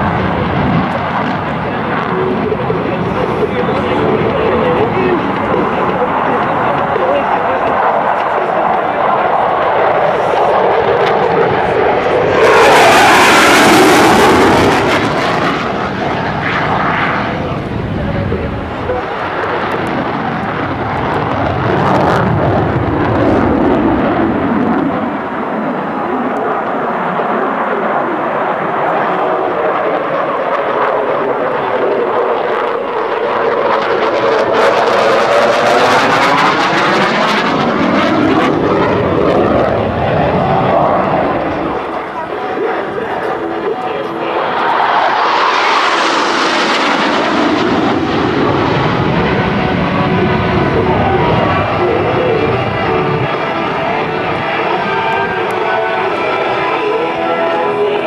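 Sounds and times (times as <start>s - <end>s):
jet engine passing overhead: 0.0s - 58.0s.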